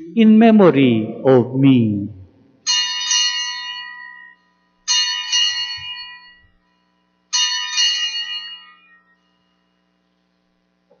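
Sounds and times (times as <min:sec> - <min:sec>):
altar bell ringing: 0:02.6 - 0:09.9.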